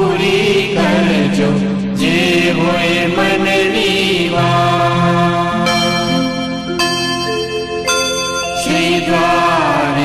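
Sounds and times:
devotional chant singing: 0.0 - 6.6, 8.4 - 10.0
musical accompaniment: 0.0 - 10.0.

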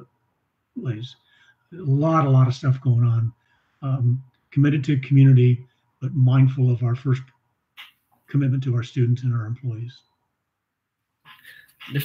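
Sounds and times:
person speaking: 0.8 - 10.0, 11.3 - 12.0.

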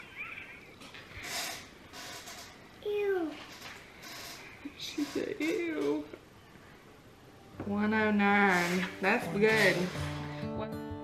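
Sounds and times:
soft high-pitched vocal sound: 2.8 - 3.4.

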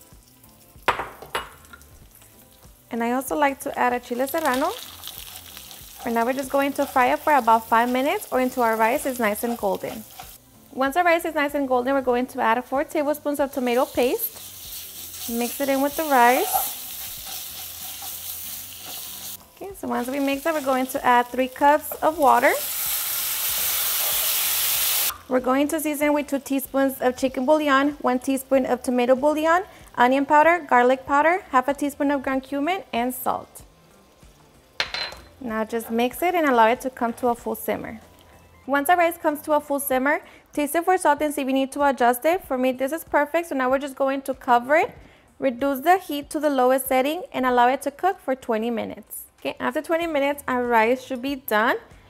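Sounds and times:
rice sizzling in hot oil: 1.6 - 12.4, 13.1 - 30.0.

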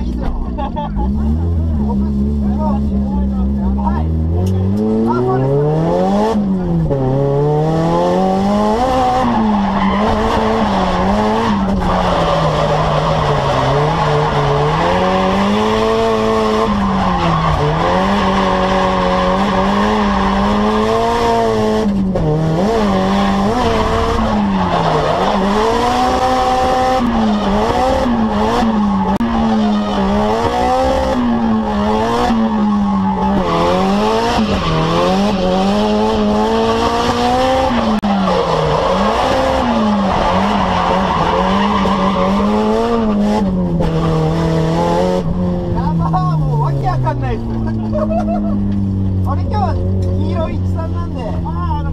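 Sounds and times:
car engine revving high: 0.0 - 51.9
tyres skidding: 0.0 - 51.9.

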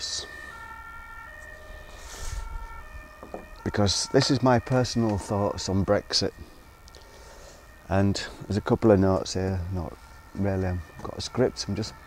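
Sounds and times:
distant siren: 0.0 - 12.0.

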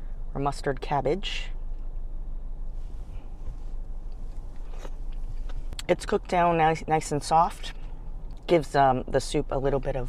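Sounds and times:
low rumble: 1.6 - 6.4
person chewing food: 4.0 - 5.8.

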